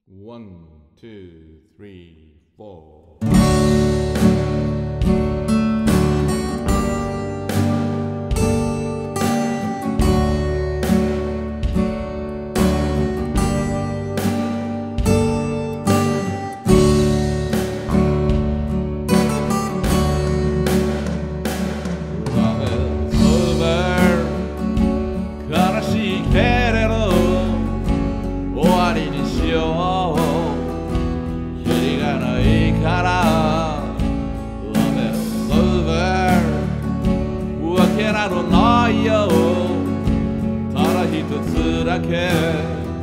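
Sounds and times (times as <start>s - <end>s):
acoustic guitars strummed and picked: 3.2s - 43.0s
electric bass: 3.2s - 43.0s
electronic drum kit beat: 3.2s - 43.0s.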